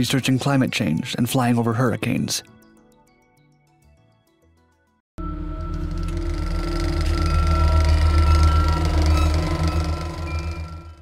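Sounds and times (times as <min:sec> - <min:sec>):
steady low hum: 0:05.2 - 0:11.0.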